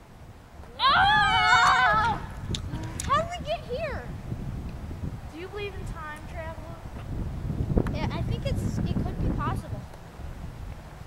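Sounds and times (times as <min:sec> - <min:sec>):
person yelling: 0:00.7 - 0:02.4.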